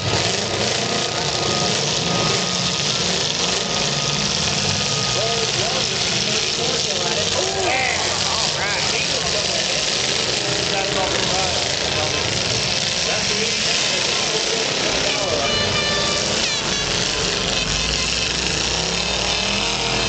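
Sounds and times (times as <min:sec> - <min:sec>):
car engines running: 0:00.0 - 0:20.0
crowd calling and shouting: 0:00.0 - 0:20.0.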